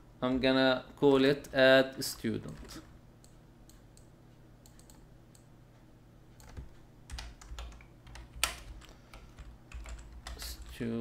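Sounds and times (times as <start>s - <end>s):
computer keyboard typing: 4.6s - 5.0s, 6.4s - 10.8s.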